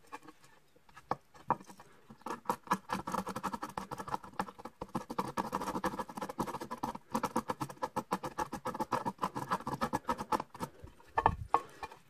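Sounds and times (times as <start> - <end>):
blade scraping charcoal: 2.2 - 12.0.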